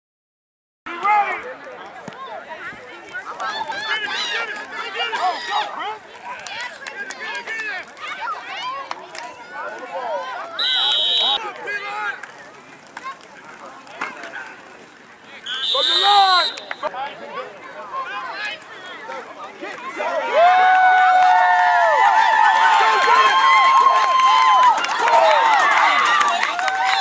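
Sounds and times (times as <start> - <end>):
spectators shouting and talking: 0.9 - 27.0
referee's whistle blasts: 10.6 - 11.4, 15.4 - 16.9.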